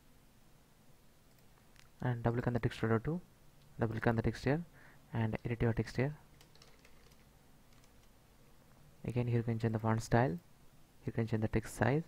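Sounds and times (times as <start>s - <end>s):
keyboard typing: 6.3s - 8.1s.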